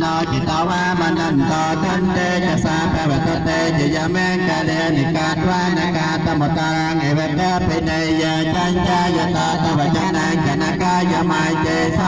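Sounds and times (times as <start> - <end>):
monks chanting in unison: 0.0 - 12.0.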